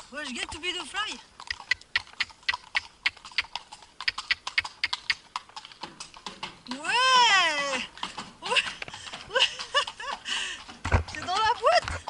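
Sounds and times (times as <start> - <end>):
horse hooves on concrete: 0.0 - 12.0.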